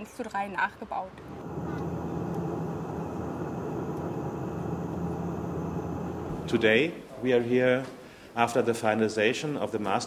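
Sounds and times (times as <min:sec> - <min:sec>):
propeller aircraft cabin drone: 0:01.2 - 0:06.6.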